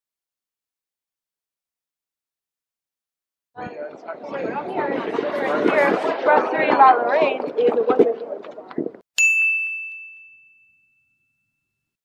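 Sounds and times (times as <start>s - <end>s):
high bright bell ding: 9.2s - 11.9s.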